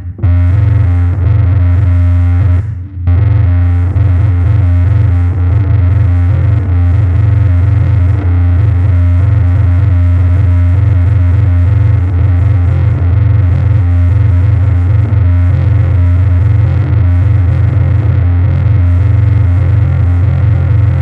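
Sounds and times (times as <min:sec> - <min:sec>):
distorted electric bass drone: 0:00.0 - 0:21.0.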